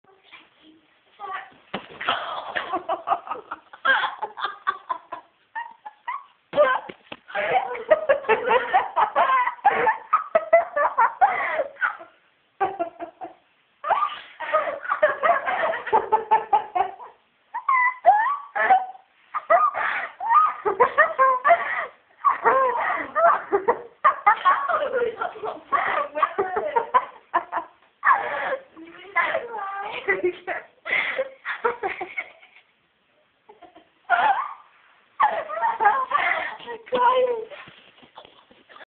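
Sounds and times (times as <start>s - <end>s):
laughter giggling and cackling: 2.3s - 6.8s, 7.4s - 32.8s, 33.5s - 37.4s.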